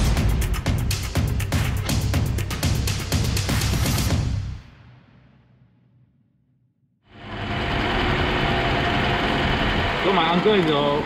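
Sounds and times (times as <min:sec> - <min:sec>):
car engine idling: 0:07.1 - 0:11.0.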